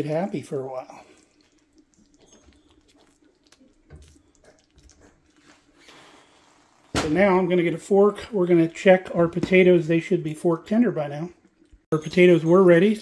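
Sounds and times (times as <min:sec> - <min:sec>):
gravy simmering with bubbling pops: 0:00.0 - 0:12.9.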